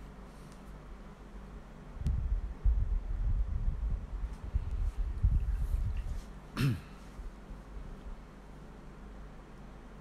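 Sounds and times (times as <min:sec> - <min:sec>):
wind buffeting microphone: 0:02.0 - 0:06.2.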